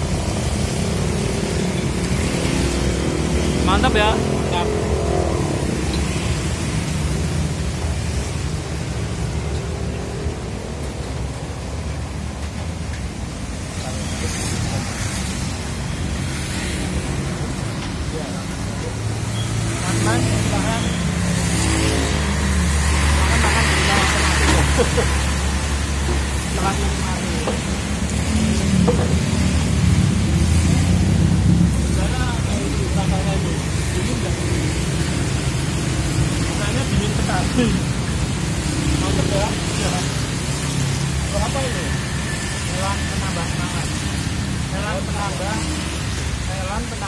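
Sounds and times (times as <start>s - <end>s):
steady rushing noise: 0.0s - 47.0s.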